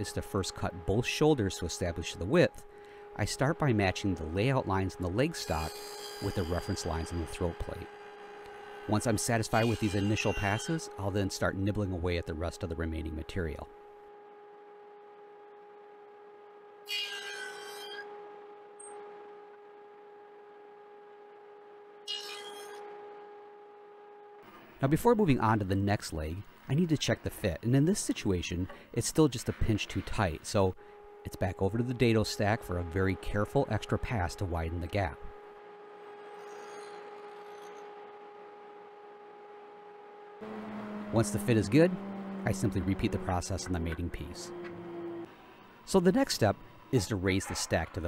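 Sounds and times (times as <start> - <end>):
table saw humming: 0.0 - 27.4, 28.1 - 48.0
saw cutting wood: 3.1 - 12.3, 16.8 - 18.1, 36.0 - 38.0, 40.4 - 48.0.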